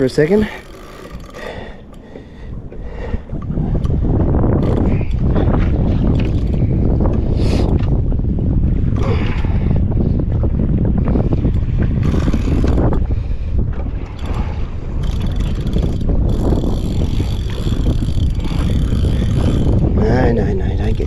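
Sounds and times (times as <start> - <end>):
fishing reel whine: 0.0 - 1.7, 12.0 - 12.9, 15.0 - 20.1
wind buffeting microphone: 0.0 - 21.0.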